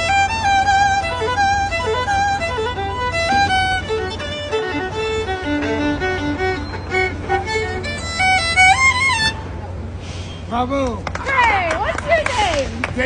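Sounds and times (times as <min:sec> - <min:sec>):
solo violin melody: 0:00.0 - 0:09.9.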